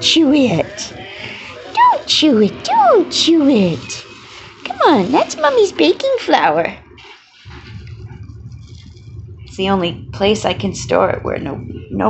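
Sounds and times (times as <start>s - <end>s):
plastic bag rustling: 2.9s - 9.2s.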